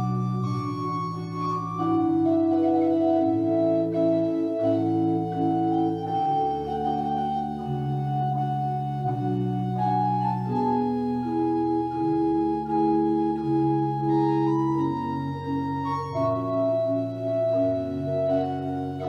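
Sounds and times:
church organ chords: 0.0s - 19.0s
organ pedal bass line: 0.0s - 19.0s.

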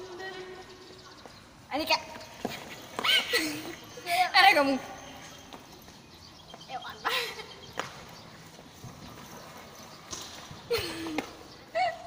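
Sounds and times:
girls giggling: 2.4s - 4.6s, 10.6s - 12.0s.

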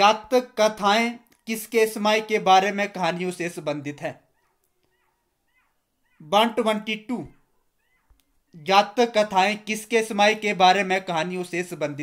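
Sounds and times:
high-pitched animal calls: 4.2s - 6.4s, 7.2s - 8.7s.

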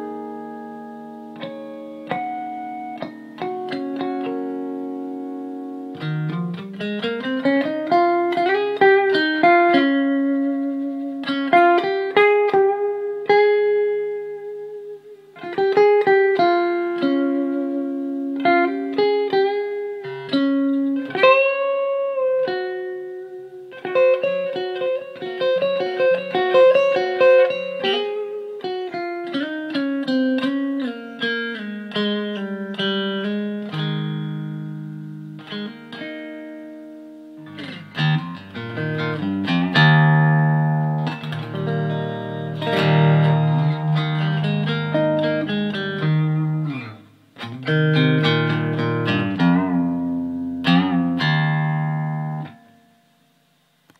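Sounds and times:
solo electric guitar: 0.0s - 53.9s.

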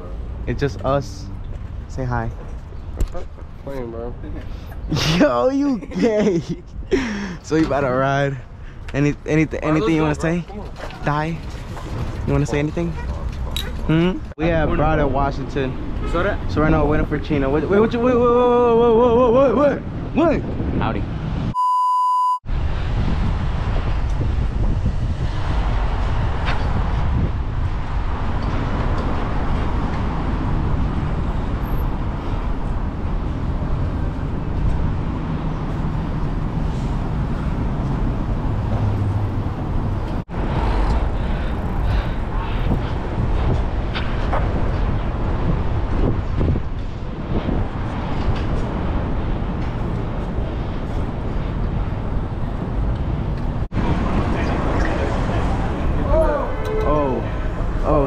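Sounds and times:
traffic: 0.0s - 21.6s, 22.5s - 58.0s
wind noise on microphone: 8.6s - 21.6s, 22.5s - 58.0s
short beep tone: 21.5s - 22.4s.

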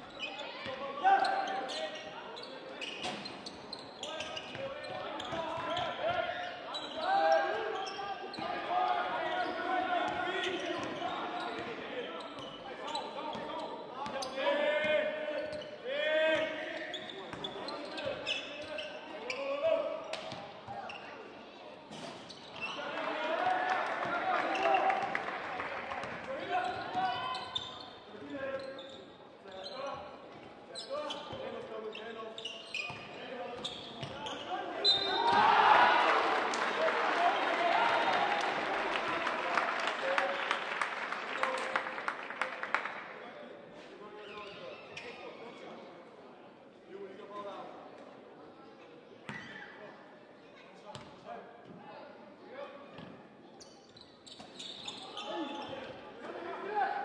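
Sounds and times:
crowd noise: 0.0s - 53.6s
players shouting: 34.9s - 39.7s.

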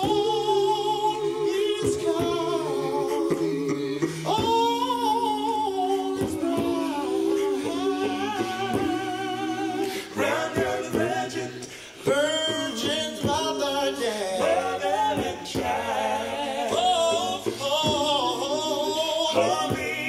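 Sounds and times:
a cappella group singing: 0.0s - 20.0s.

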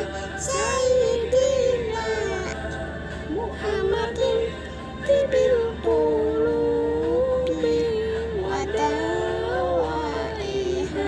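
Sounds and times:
girl singing: 0.0s - 2.8s, 8.4s - 11.0s.

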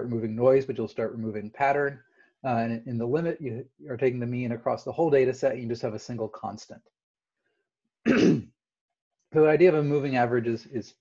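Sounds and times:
man clearing throat: 8.1s - 8.5s.

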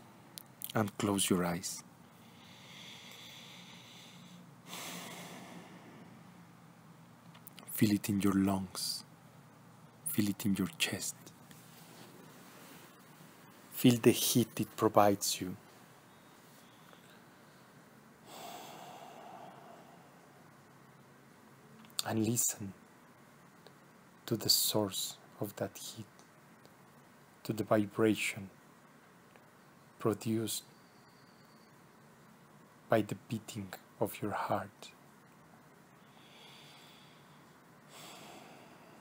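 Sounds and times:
person breathing through nose: 2.2s - 6.2s, 18.2s - 20.4s, 36.0s - 39.0s.

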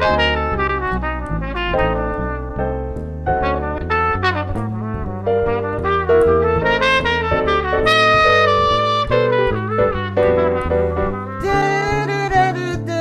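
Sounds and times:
jazz trumpet solo: 0.0s - 13.0s
piano chords: 0.0s - 13.0s
walking bass line: 0.0s - 13.0s.

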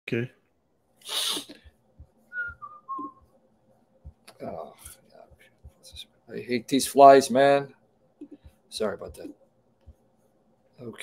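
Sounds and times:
breathy hiss of air: 1.0s - 1.7s
descending whistled notes: 2.3s - 3.2s
faint low thumps: 4.0s - 4.5s.

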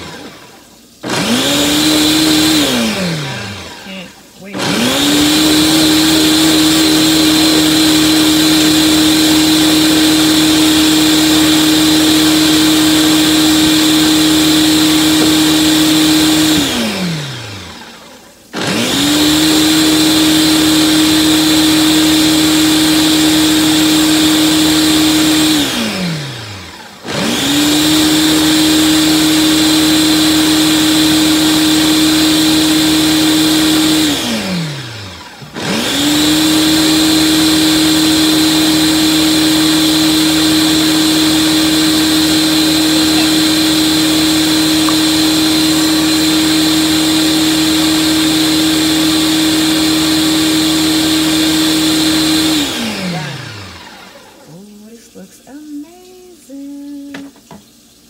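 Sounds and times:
blender motor running: 0.0s - 54.9s.

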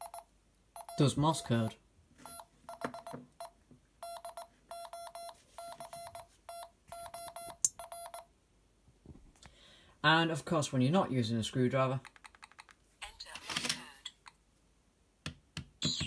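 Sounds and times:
morse code beeps: 0.0s - 8.3s.

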